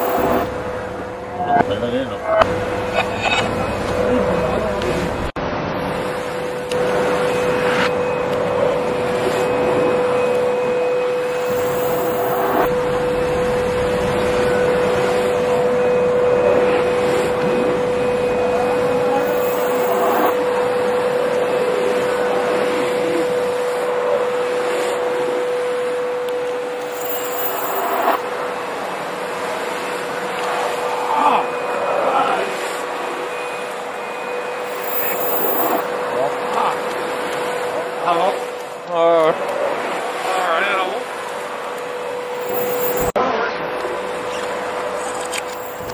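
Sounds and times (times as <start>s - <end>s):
steady mechanical hum: 0.0s - 45.9s.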